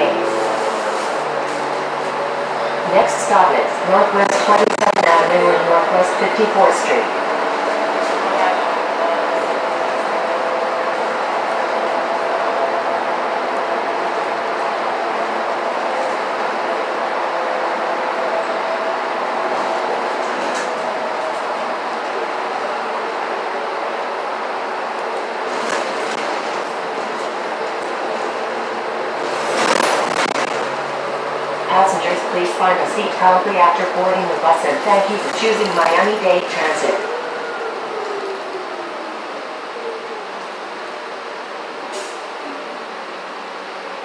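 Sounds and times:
bus engine and road noise: 0:00.0 - 0:44.0
rush of noise: 0:23.7 - 0:42.7.

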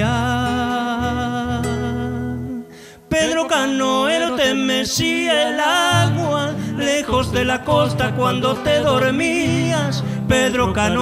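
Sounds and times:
acoustic guitars: 0:00.0 - 0:11.0.

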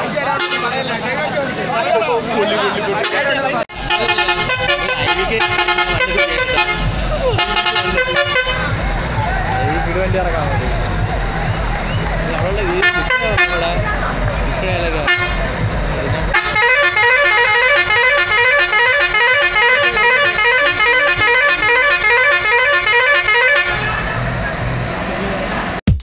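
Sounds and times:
voices: 0:00.0 - 0:25.8
short horn blasts: 0:03.0 - 0:08.8, 0:12.7 - 0:13.8, 0:15.0 - 0:15.4, 0:16.3 - 0:24.2
musical air horn tune: 0:03.0 - 0:08.9, 0:12.7 - 0:13.8, 0:15.0 - 0:15.5, 0:16.3 - 0:24.2.

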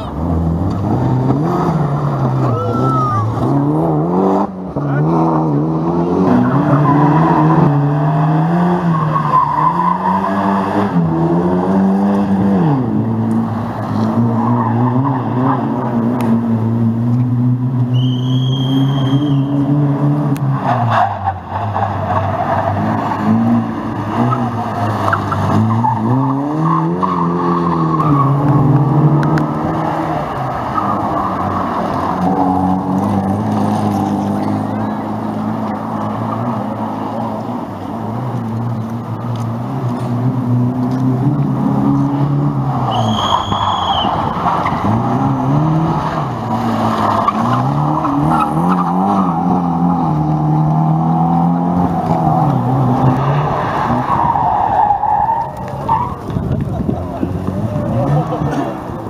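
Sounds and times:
rally car engines revving: 0:00.0 - 0:59.0
tyre squeal: 0:17.9 - 0:19.7, 0:42.9 - 0:44.9.

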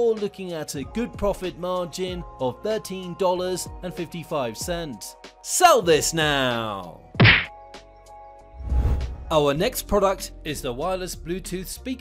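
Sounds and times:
faint background music: 0:00.0 - 0:12.0
sharp whack: 0:07.2 - 0:07.5
transition whoosh: 0:08.6 - 0:09.3.

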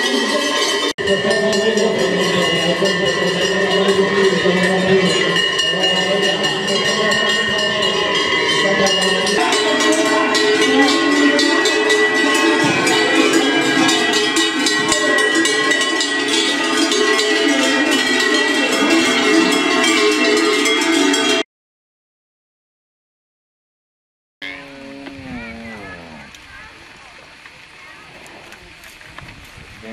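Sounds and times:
cowbells clanging: 0:00.0 - 0:21.4.

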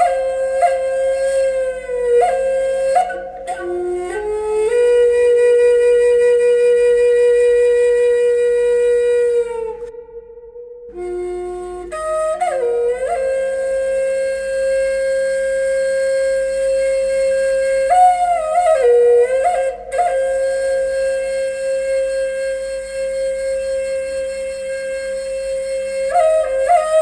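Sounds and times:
solo flute melody: 0:00.0 - 0:27.0.

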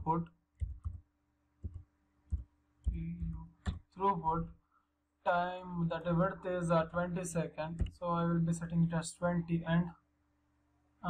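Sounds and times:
keyboard keystrokes: 0:00.6 - 0:01.0.

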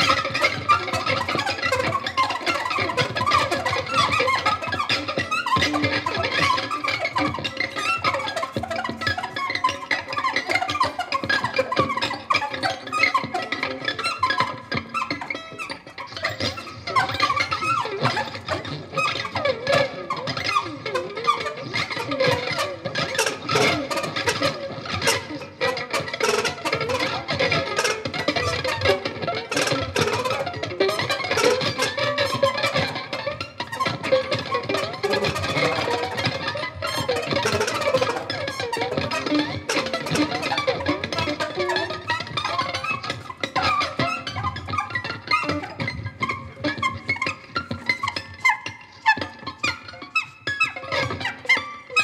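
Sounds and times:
violin: 0:00.0 - 0:52.0.

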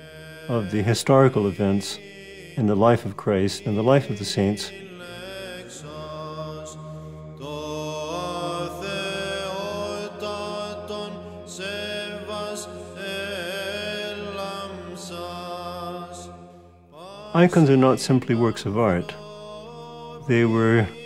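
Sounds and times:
chanted sung melody: 0:00.0 - 0:21.0.

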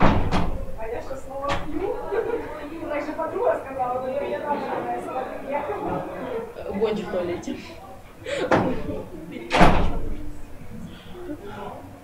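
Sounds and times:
door banging shut: 0:00.0 - 0:00.8, 0:01.4 - 0:01.8, 0:09.5 - 0:10.2.

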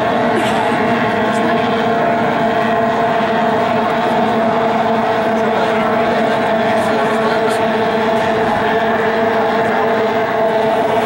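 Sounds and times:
racing boat engines droning: 0:00.0 - 0:11.0.

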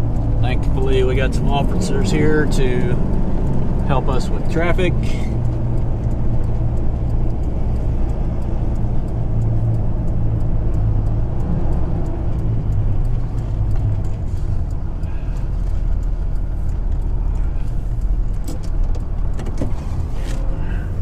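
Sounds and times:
truck engine drone: 0:00.0 - 0:21.0
tyre and road noise: 0:00.0 - 0:21.0.

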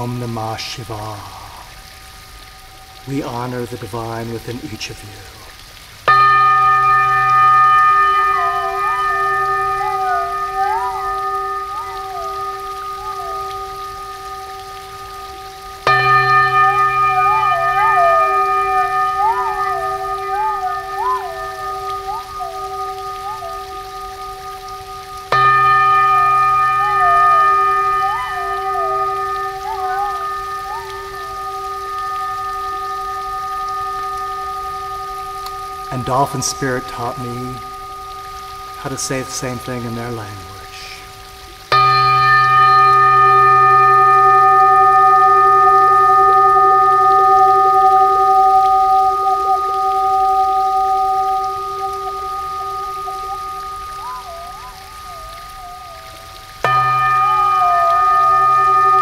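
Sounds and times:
crystal singing bowl ringing: 0:06.0 - 0:59.0
gliding whistle-like tones: 0:08.4 - 0:13.8, 0:17.2 - 0:24.9, 0:26.8 - 0:38.9, 0:50.2 - 0:59.0.

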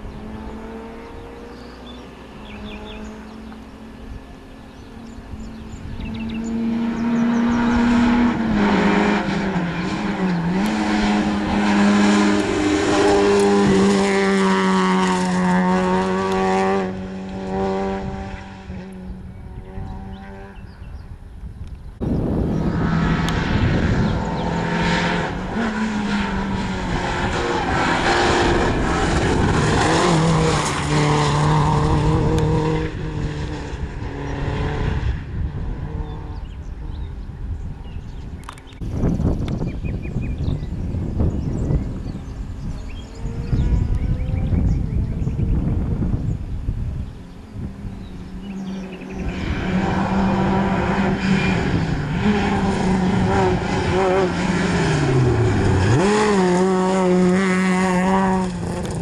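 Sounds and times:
rally car engine revving: 0:00.0 - 0:20.8, 0:22.0 - 0:37.1, 0:40.6 - 0:46.3, 0:47.7 - 0:59.0.

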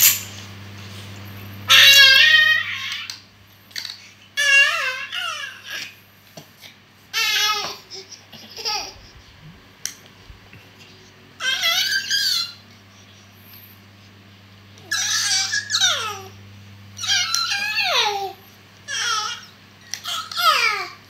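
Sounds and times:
baby squealing: 0:01.7 - 0:03.1, 0:11.4 - 0:12.6, 0:14.9 - 0:16.3.

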